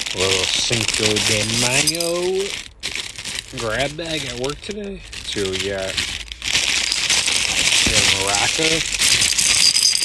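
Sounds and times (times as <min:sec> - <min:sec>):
cellophane bag crinkling: 0:00.0 - 0:10.0.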